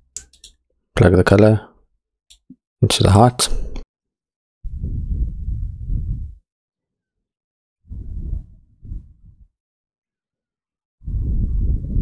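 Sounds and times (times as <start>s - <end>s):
low muffled rumble on microphone: 4.7s - 6.4s, 7.9s - 9.5s, 11.0s - 12.0s.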